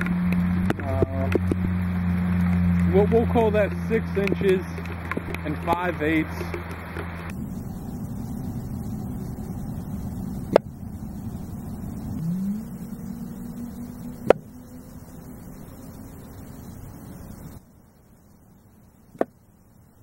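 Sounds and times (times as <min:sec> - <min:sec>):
low steady rumble: 0:00.0 - 0:20.0.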